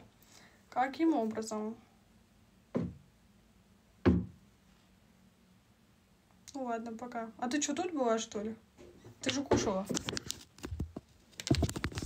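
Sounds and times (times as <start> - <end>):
dull thumps: 2.7 - 3.1, 4.0 - 4.4.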